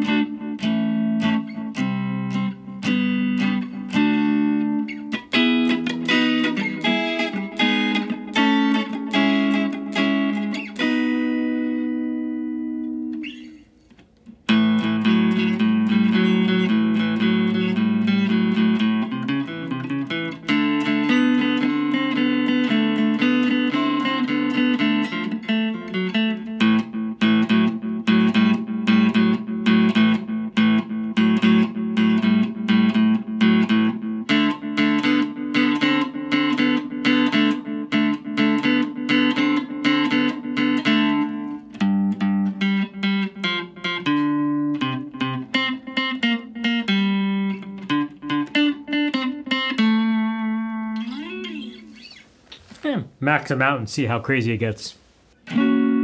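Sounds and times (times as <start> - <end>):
electric guitar with delay: 0.0 - 13.6, 14.5 - 52.2, 55.4 - 56.0.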